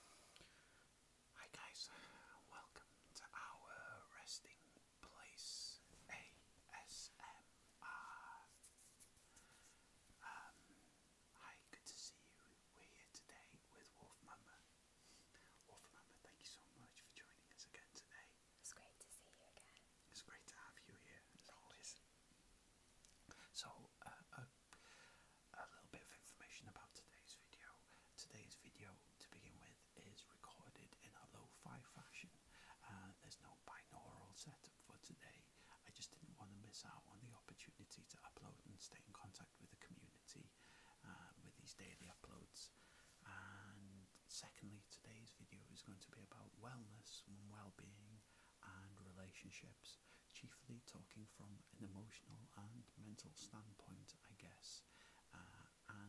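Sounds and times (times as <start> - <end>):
person whispering: 1.3 - 22.0, 23.0 - 24.9, 25.5 - 56.0.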